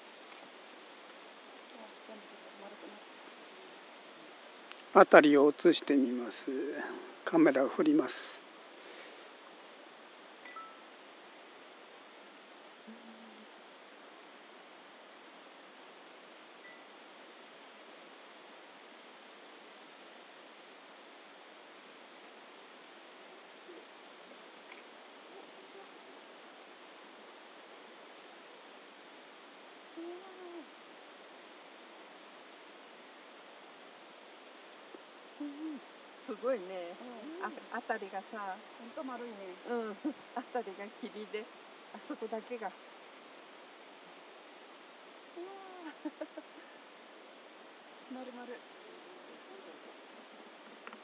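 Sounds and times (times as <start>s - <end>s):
faint outdoor hiss: 0.0s - 51.0s
person humming low: 12.8s - 13.6s, 29.9s - 30.7s, 35.4s - 35.9s, 45.4s - 46.4s
faint whistle-like tone: 16.6s - 16.9s.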